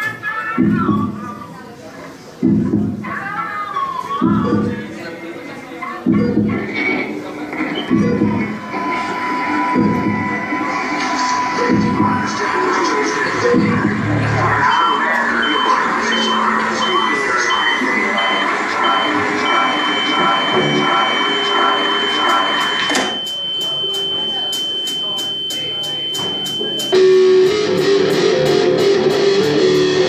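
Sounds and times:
crowd chatter: 0:00.0 - 0:30.0
high electronic beep: 0:07.6 - 0:28.4.

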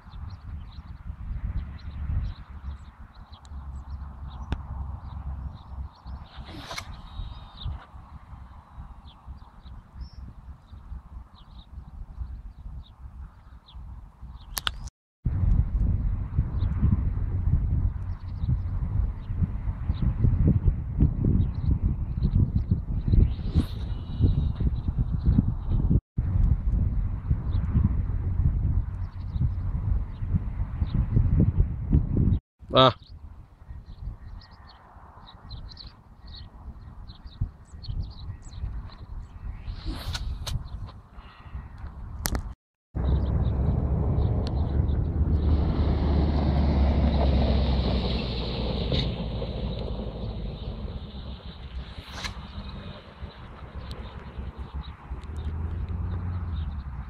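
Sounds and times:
wind on microphone: 0:00.0 - 0:57.0
faint bird chirps: 0:01.8 - 0:07.9
fishing line high whine: 0:06.2 - 0:07.8, 0:39.6 - 0:40.6, 0:48.2 - 0:54.4
fishing rod whoosh: 0:06.2 - 0:07.8, 0:39.6 - 0:40.7, 0:48.7 - 0:53.3.

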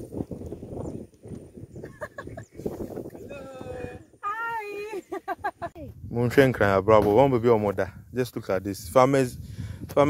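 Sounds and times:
people talking: 0:03.2 - 0:09.4.

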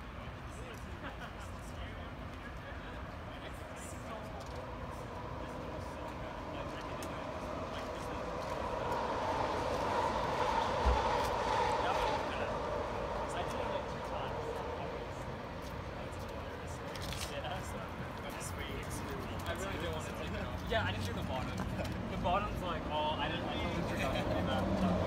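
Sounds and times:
train passing with whine: 0:04.1 - 0:16.6.

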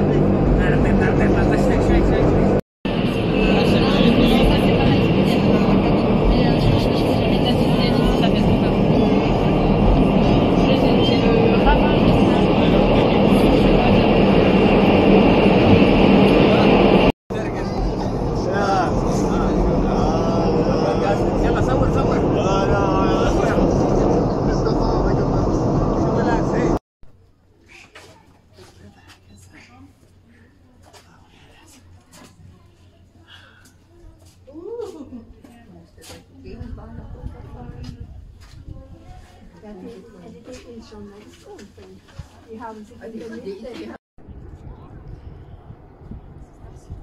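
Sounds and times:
indistinct voices: 0:00.0 - 0:26.8
railcar rumbling: 0:00.0 - 0:26.8
vehicle running: 0:00.0 - 0:26.8.

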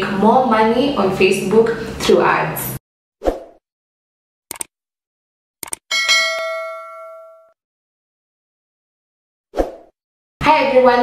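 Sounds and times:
bell-like ding chime: 0:05.9 - 0:07.6.

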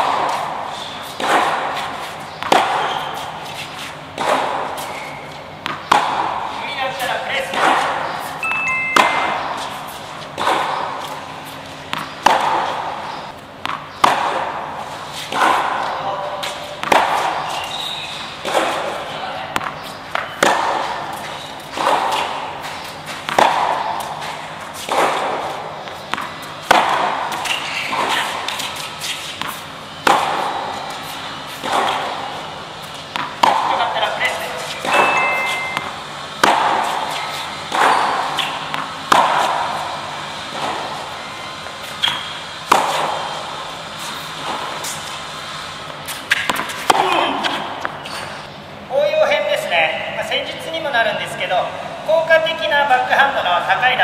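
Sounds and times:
tennis ball hit by racket: 0:00.0 - 0:48.4.

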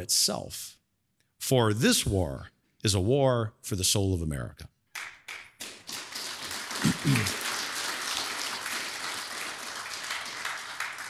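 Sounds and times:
crowd clapping: 0:05.0 - 0:11.0
person cheering: 0:06.8 - 0:07.4.

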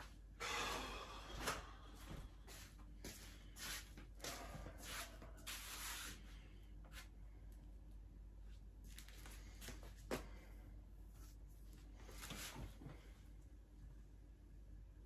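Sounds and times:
scuffing and scraping: 0:02.0 - 0:06.2.

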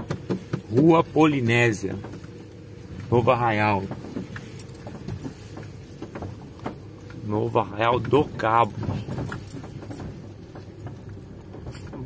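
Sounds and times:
car engine and tyres rumbling: 0:00.0 - 0:12.0
car rattles and clicks: 0:00.0 - 0:12.0.

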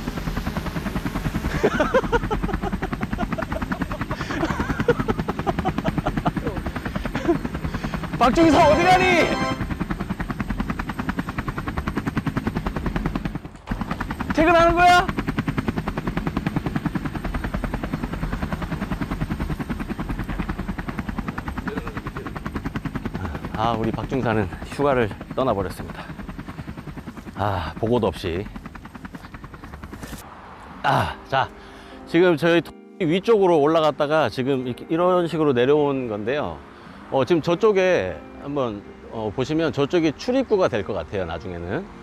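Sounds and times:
helicopter rotor chopping: 0:00.0 - 0:30.8
drone propellers buzzing: 0:00.0 - 0:31.6.

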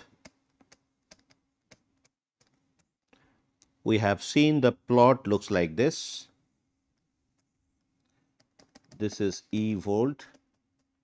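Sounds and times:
stylus tapping on tablet screen: 0:06.9 - 0:09.4.

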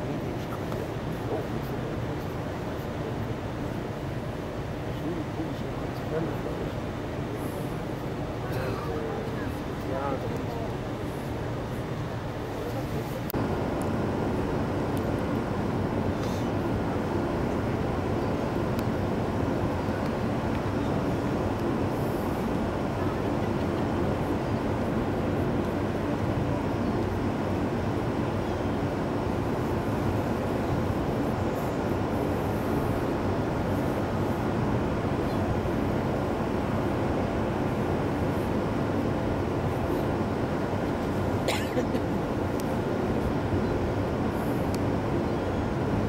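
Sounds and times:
faint machinery hum: 0:00.0 - 0:46.0
ship engines rumbling: 0:00.0 - 0:46.0.

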